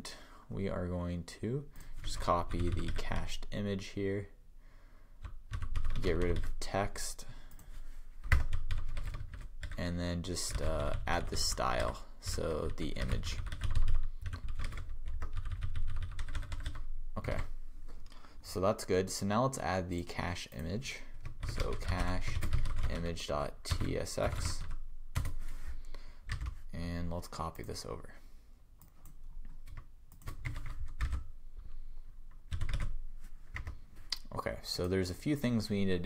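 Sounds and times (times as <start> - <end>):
keyboard typing: 1.8 - 3.0, 5.2 - 6.6, 8.2 - 9.8, 10.5 - 17.5, 21.2 - 23.1, 23.7 - 25.5, 26.3 - 26.6, 28.8 - 31.3, 32.4 - 33.8.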